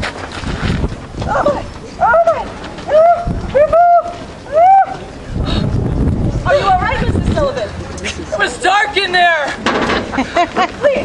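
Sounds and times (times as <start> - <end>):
low rumbling scuffing noise: 0.0 - 8.6.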